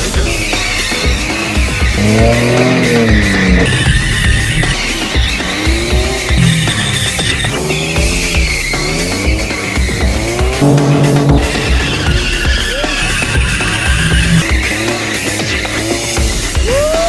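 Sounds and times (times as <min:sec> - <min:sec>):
car engine revving: 0:00.0 - 0:16.7
music with steady beat: 0:00.0 - 0:17.0
tyres squealing: 0:00.2 - 0:16.6.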